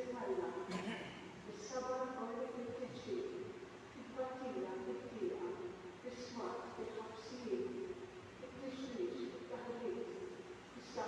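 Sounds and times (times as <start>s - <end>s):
woman speaking into microphone: 0.0s - 11.0s.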